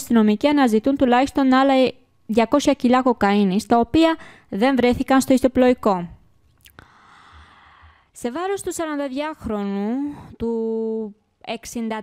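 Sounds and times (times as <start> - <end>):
soft breath close to microphone: 6.8 - 8.2.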